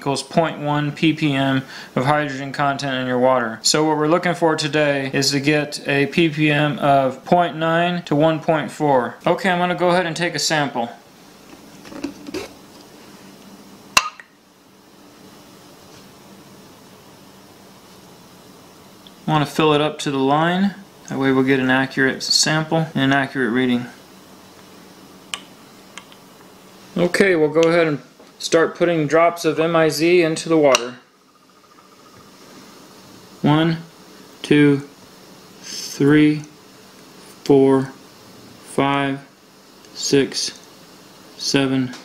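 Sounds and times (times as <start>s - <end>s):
faint steady hiss: 0.0s - 42.0s
faint steady hum: 0.0s - 42.0s
faint high steady tone: 28.4s - 33.9s.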